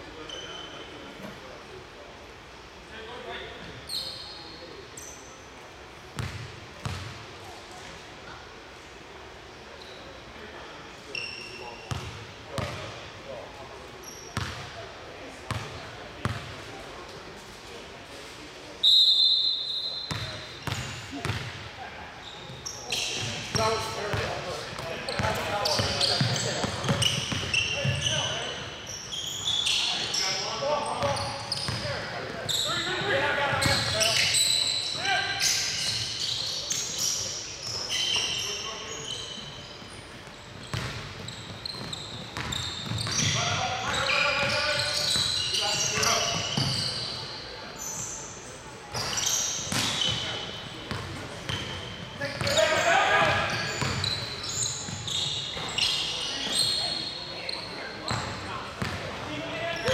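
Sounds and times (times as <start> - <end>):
players calling in a gym: 18.8 - 21.3, 22.1 - 59.9.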